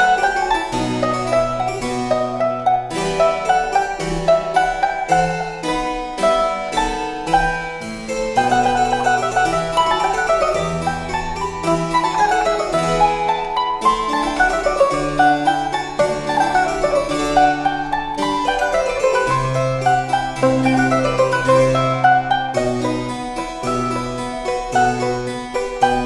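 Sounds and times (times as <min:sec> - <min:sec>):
harpsichord bass line: 0:00.0 - 0:26.0
mandolin fast melody: 0:00.0 - 0:26.0.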